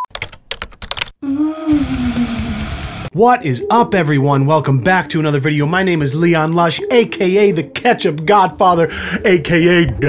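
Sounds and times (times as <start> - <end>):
intro music: 1.7 - 10.0.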